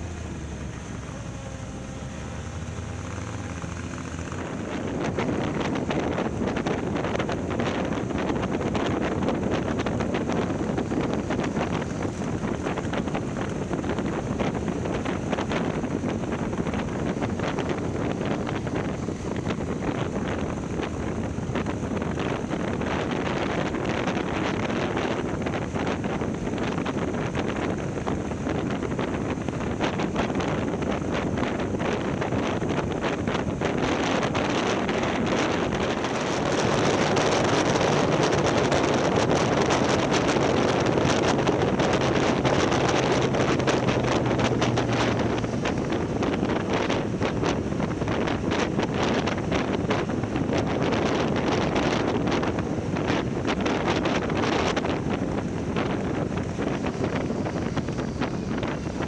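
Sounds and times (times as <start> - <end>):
motorcycle running: 0.0 - 59.0
wind buffeting microphone: 0.0 - 59.0.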